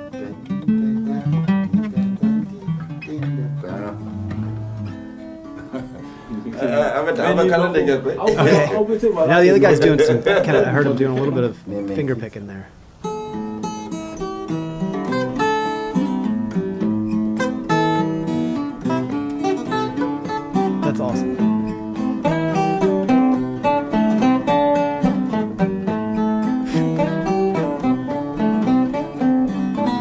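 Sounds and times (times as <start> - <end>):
acoustic guitars playing blues: 0.0 - 30.0.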